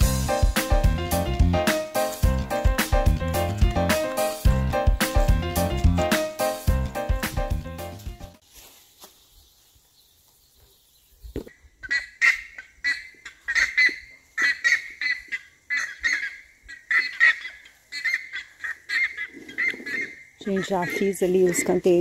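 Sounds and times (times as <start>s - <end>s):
background music: 0.0s - 8.4s
ibises calling loudly: 11.4s - 22.0s.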